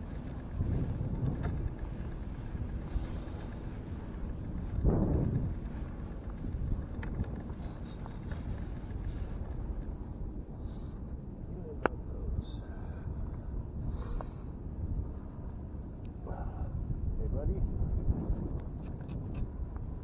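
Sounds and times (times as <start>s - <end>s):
wind rumbling on microphone: 0.0s - 20.0s.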